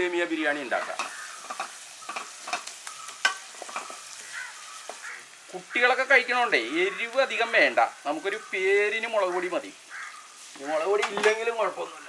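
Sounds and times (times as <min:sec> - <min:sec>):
onions sizzling in oil: 0:00.0 - 0:12.0
wooden spatula scraping a pan: 0:00.8 - 0:05.2, 0:10.4 - 0:11.5.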